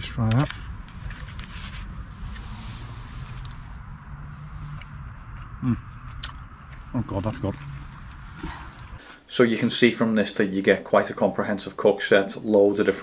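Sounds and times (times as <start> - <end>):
low outdoor background hum: 0.0 - 13.0.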